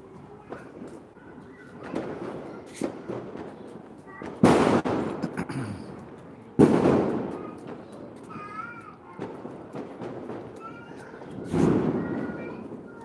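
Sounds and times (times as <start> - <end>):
loud firecracker bangs: 1.7 - 13.0.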